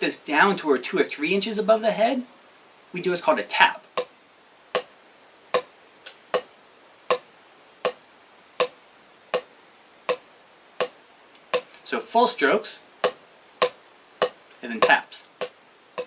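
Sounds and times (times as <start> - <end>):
drumsticks clicking on practice pad: 5.6 - 6.5, 7.1 - 8.0, 8.6 - 9.5, 10.8 - 11.8, 13.0 - 16.0.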